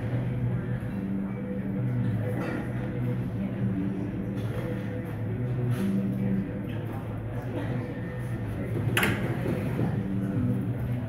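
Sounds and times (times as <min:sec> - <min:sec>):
low steady drone: 0:00.0 - 0:11.0
murmur of voices: 0:00.0 - 0:11.0.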